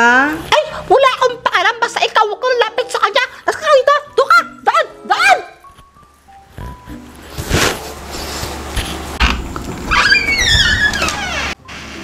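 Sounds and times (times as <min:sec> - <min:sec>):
dog whining: 0:09.8 - 0:11.6.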